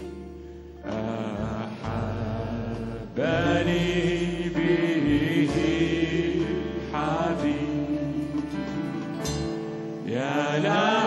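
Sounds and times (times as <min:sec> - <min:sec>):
man singing a slow hymn: 0:00.8 - 0:08.9, 0:10.0 - 0:11.0.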